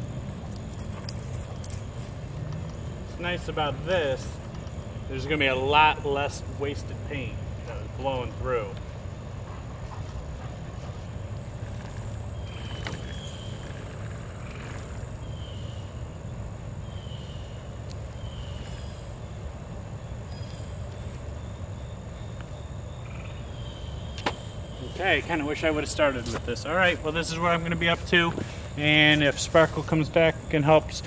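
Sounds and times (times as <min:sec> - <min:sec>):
low outdoor rumble: 0:00.0 - 0:31.0
thin steady high tone: 0:00.0 - 0:31.0.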